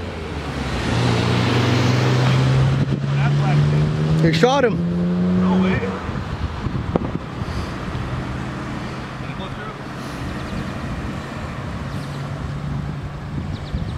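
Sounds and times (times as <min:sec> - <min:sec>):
car engine running: 0:00.0 - 0:13.5
outdoor background noise: 0:00.0 - 0:13.9
wind on microphone: 0:01.8 - 0:03.2, 0:05.2 - 0:09.2, 0:09.8 - 0:13.9.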